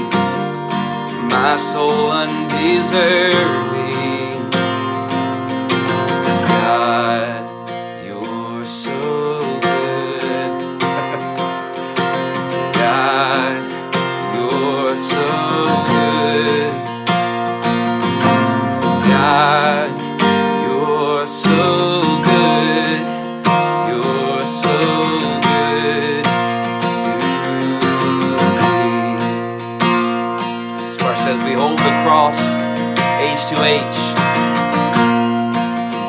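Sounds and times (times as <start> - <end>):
acoustic guitar strumming: 0.0 - 36.0
man singing: 0.9 - 29.6, 30.4 - 34.5.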